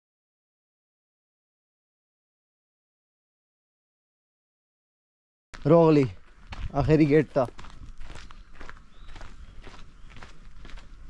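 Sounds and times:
footsteps on gravel: 5.6 - 11.0.

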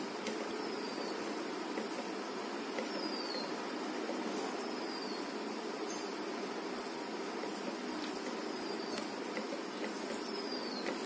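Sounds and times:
steady low background noise: 0.0 - 11.0
fingers mixing rice: 7.3 - 11.0.

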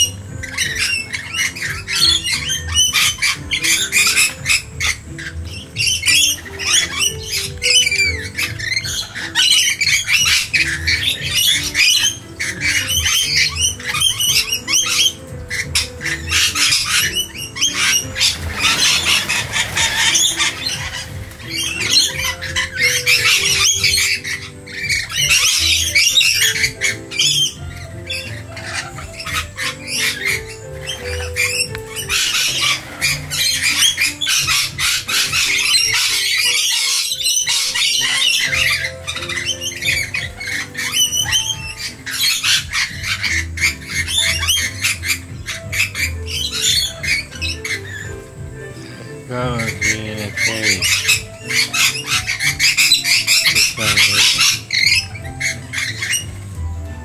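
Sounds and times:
background music: 0.0 - 57.0
lorikeets screeching: 0.0 - 57.0.

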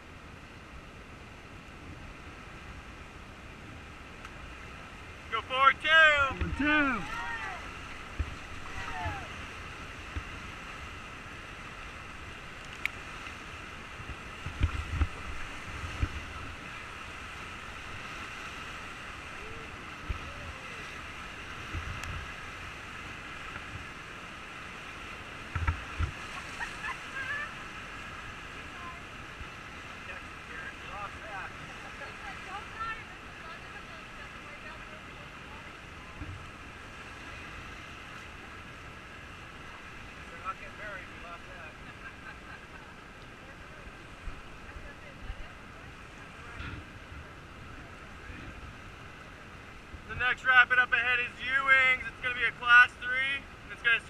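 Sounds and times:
whitewater rapids rushing: 0.0 - 54.0.

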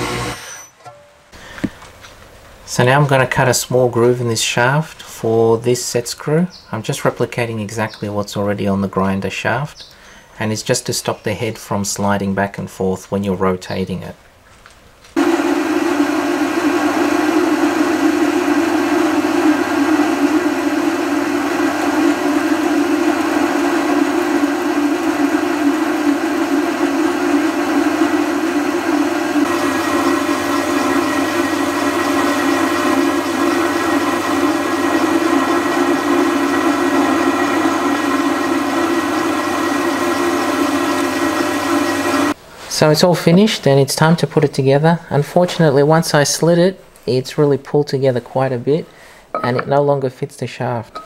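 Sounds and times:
metal lathe cutting steel: 0.0 - 0.8, 15.2 - 42.4.

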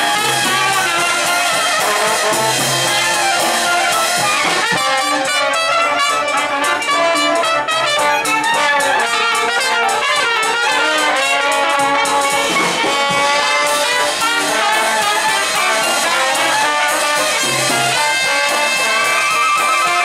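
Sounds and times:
drum kit cymbals: 0.0 - 6.9, 7.5 - 20.0
jazz band playing: 0.0 - 20.0
trumpet melody: 0.0 - 20.0.

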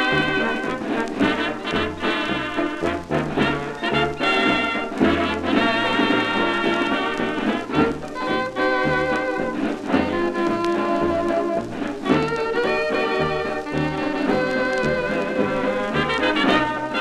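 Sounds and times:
dance orchestra brass and reeds: 0.0 - 17.0
record surface noise: 0.0 - 17.0.

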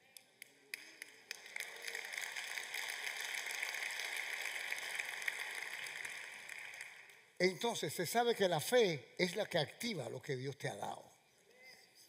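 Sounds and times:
congregation applauding: 0.4 - 7.3.

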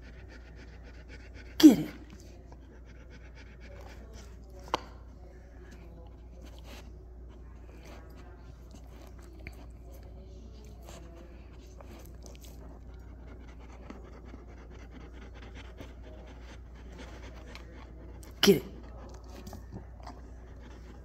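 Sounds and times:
dog licking and sniffing: 5.6 - 21.0.

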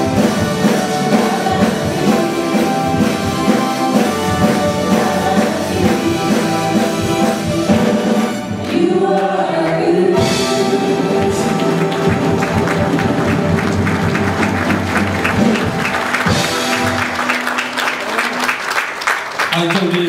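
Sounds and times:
choir singing with accompaniment: 0.0 - 17.2
people clapping: 8.6 - 10.2, 11.1 - 20.0.

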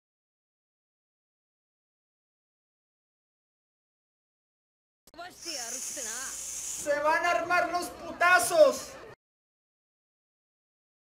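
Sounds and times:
hissing breath through teeth: 5.4 - 6.9.

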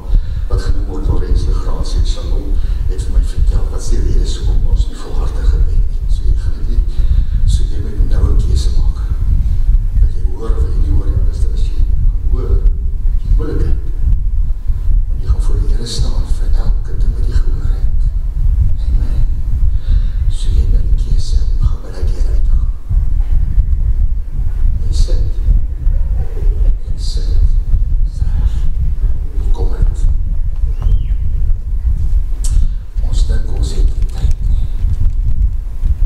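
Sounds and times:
man speaking through microphone: 0.0 - 14.1, 15.1 - 23.0, 24.7 - 30.3, 32.4 - 35.0
heavy low rumble: 0.0 - 36.0.

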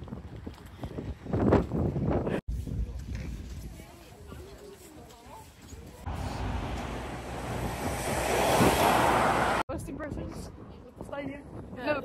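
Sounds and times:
wind rumbling on microphone: 0.0 - 4.5, 6.0 - 12.0
road traffic rushing past: 6.1 - 9.7.

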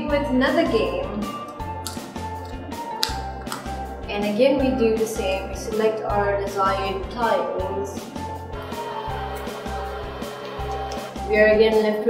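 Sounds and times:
music with repeating bass beat: 8.6 - 11.3.

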